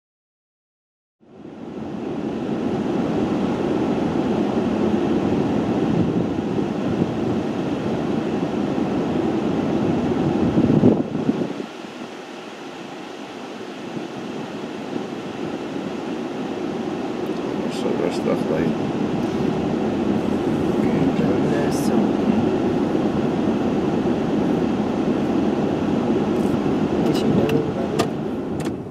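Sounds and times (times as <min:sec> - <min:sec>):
vehicle engine rumbling: 0:13.3 - 0:28.9.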